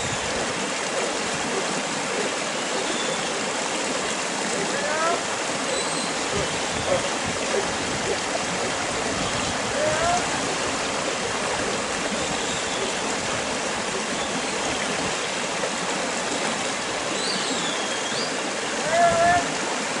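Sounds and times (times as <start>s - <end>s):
person shouting calls: 4.5s - 5.3s, 9.6s - 10.4s, 18.7s - 19.6s.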